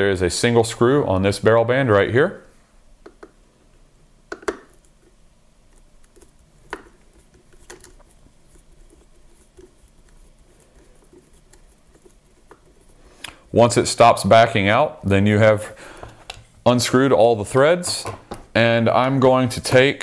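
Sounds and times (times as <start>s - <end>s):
screwdriver scratching and clicking: 5.7s - 13.0s.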